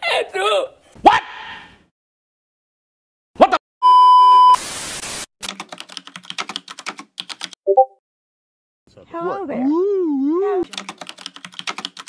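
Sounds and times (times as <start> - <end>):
censor bleep: 3.8 - 4.6
static hiss burst: 4.6 - 5.3
keyboard typing clicks: 5.4 - 7.9, 10.7 - 12.0.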